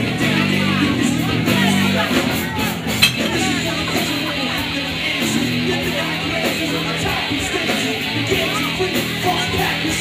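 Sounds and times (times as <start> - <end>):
crowd chatter: 0.0 - 10.0
glass bottles clinking: 2.9 - 4.2.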